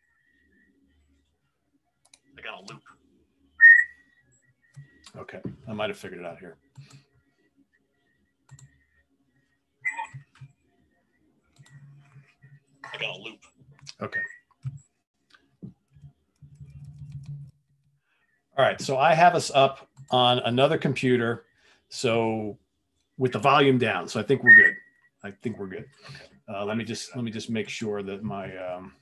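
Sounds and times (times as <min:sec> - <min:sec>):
person whistling high note: 0:03.6 - 0:04.0.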